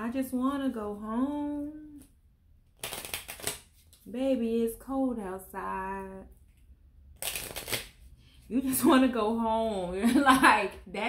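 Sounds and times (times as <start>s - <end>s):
cards being shuffled: 2.7s - 4.1s, 7.2s - 8.1s.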